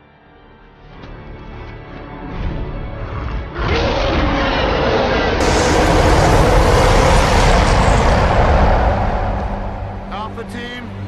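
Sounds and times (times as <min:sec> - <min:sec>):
film soundtrack music: 0:00.0 - 0:11.0
dense sound effects: 0:05.0 - 0:11.0.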